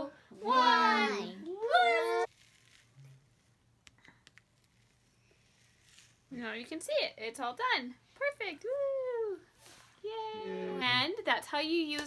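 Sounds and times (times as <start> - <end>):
voices singing out a word: 0.0 - 2.3.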